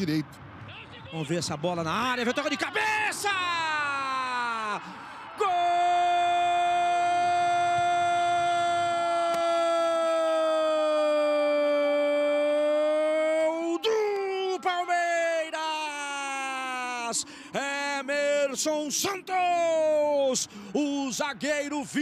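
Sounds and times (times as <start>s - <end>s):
commentator shouting goal cry: 2.0s - 4.8s.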